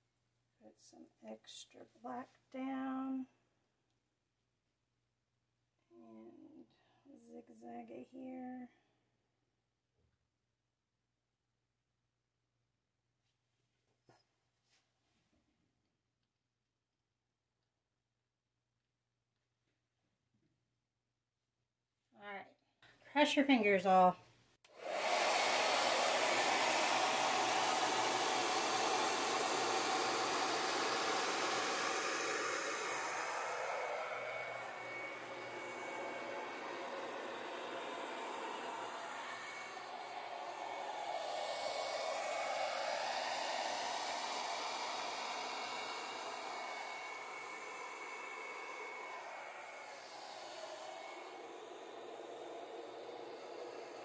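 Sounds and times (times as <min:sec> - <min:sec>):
hair dryer blowing air: 0:24.7 - 0:54.0.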